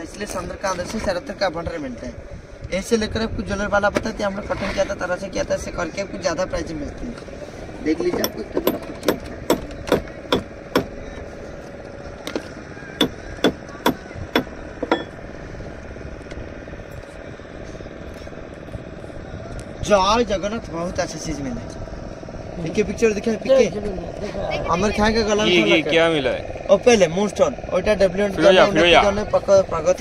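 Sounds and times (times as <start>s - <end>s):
metal pipe knocking on shell: 13.0s - 15.1s.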